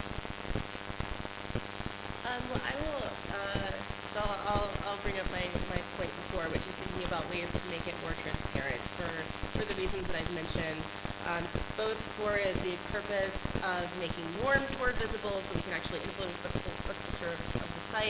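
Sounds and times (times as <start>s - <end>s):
dense crackle of clicks: 0.0s - 18.0s
person speaking: 2.2s - 18.0s.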